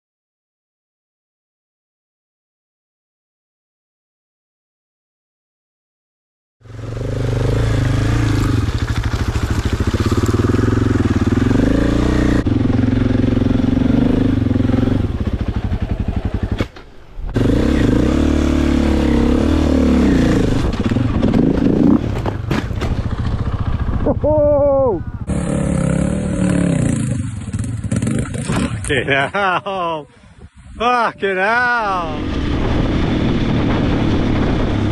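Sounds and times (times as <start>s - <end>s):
dirt bike engine revving: 6.6s - 16.6s, 17.3s - 29.6s, 31.7s - 34.9s.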